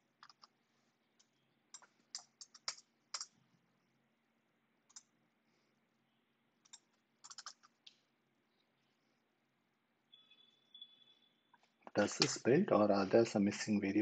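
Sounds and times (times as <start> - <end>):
keyboard and mouse clicks: 0.2 - 0.5, 1.2 - 3.4, 4.9 - 5.1, 6.6 - 8.0.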